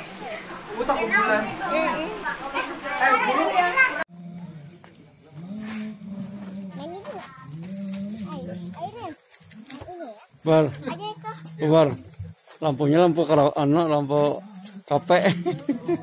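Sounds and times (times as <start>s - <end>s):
chatter and laughter: 0.0s - 4.1s, 15.0s - 16.0s.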